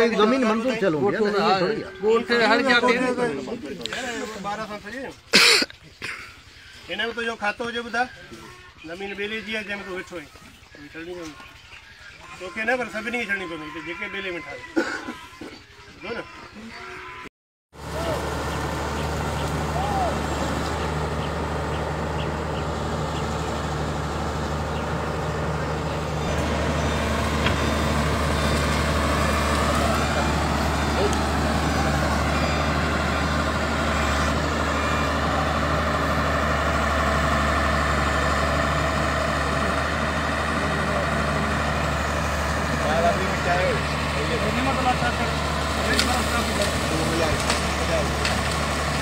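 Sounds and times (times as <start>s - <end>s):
excavator diesel engine running: 17.8s - 49.0s.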